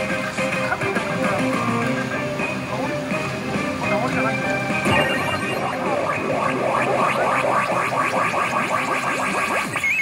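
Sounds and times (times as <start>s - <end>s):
short warbling tone: 4.8s - 10.0s
rapid electronic clicks: 4.9s - 10.0s.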